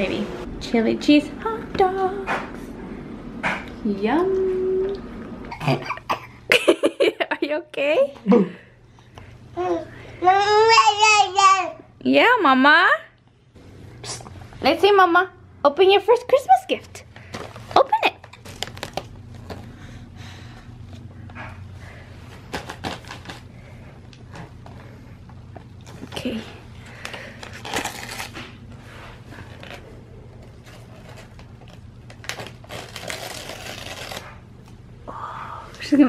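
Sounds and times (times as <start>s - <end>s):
faint steady hum: 0.0s - 36.0s
wrapping paper rustling: 17.2s - 19.7s, 22.4s - 23.5s, 26.9s - 34.4s
paper tearing: 27.5s - 28.5s, 30.8s - 34.4s.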